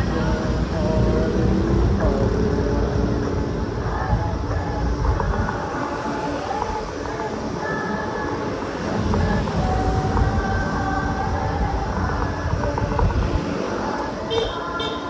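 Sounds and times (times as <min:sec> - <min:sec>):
wind and road rumble: 0:00.0 - 0:15.0.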